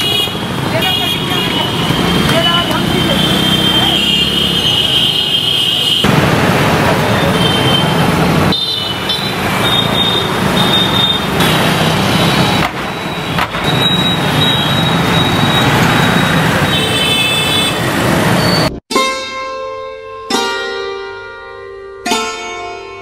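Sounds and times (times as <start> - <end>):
cars driving past: 0.0 - 5.0, 6.0 - 18.8
motorbikes driving past: 0.4 - 5.1, 6.0 - 18.7.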